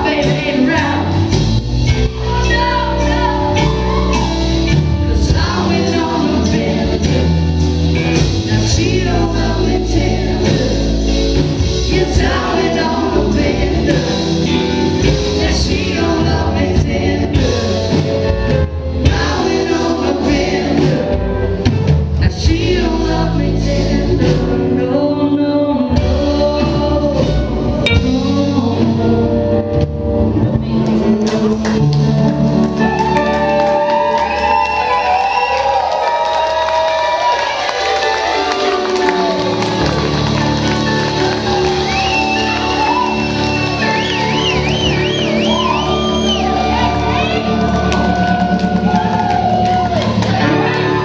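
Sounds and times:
several voices singing: 0.0s - 4.4s, 5.1s - 29.5s
rock band playing live: 0.0s - 51.0s.

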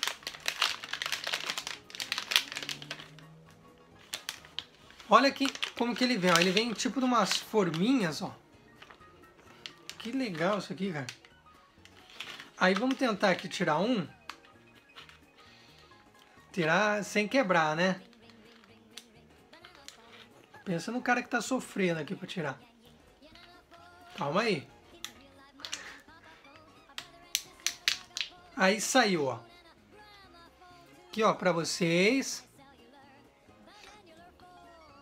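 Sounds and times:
plastic packaging clicks: 0.0s - 15.4s, 18.0s - 20.3s, 23.4s - 28.6s
candy wrapper crinkling: 0.0s - 16.3s, 17.3s - 22.4s, 23.2s - 29.2s
faint background music: 0.0s - 35.0s.

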